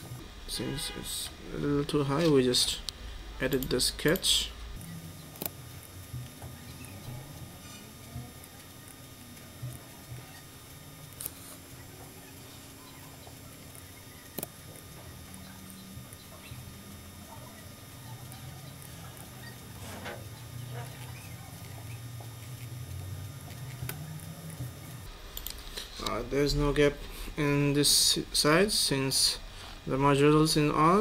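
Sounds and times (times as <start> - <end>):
faint low hum: 0.0 - 31.0.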